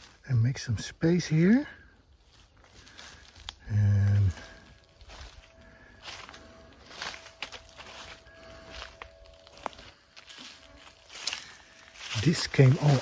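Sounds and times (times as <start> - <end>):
footsteps crunching on dry leaves: 0.0 - 13.0.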